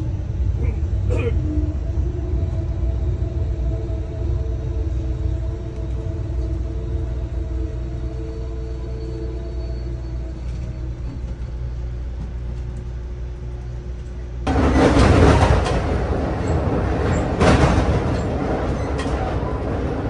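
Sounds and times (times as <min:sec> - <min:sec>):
humming tones: 0:00.0 - 0:20.0
train rumble from inside: 0:00.0 - 0:20.0.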